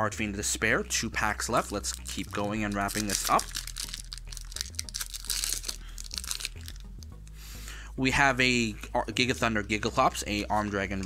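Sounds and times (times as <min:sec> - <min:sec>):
foil wrapper tearing and crinkling: 0:01.7 - 0:07.0.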